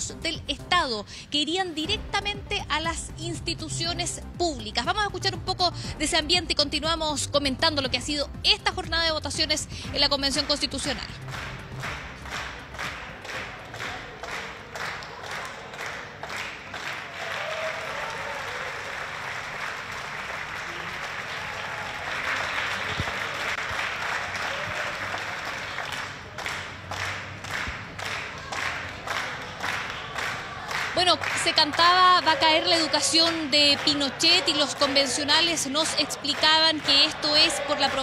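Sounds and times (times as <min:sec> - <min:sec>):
crowd clapping: 0:10.4 - 0:38.0
crowd chanting: 0:31.9 - 0:38.0.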